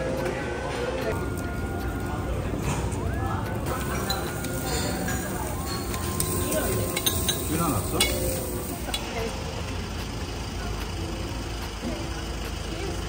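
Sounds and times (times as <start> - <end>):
beef sizzling on a grill: 3.7 - 9.5
metal tongs clicking: 3.8 - 9.1.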